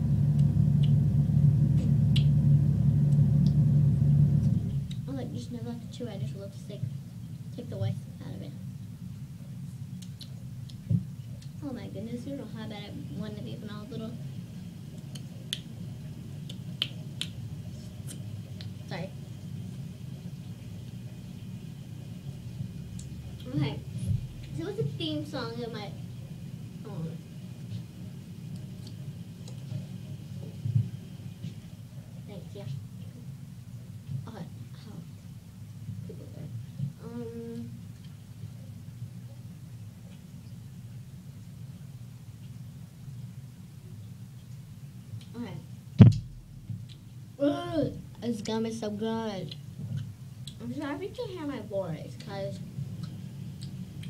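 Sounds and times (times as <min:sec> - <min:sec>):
steady low hum: 0:00.0 - 0:54.0
chewing gum clicks at lips: 0:10.0 - 0:10.8.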